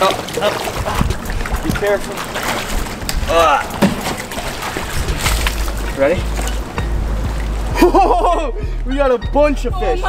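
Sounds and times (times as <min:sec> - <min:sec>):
water sloshing and trickling: 0:00.0 - 0:10.0
small knocks: 0:01.0 - 0:04.6
low rumble: 0:04.4 - 0:08.9.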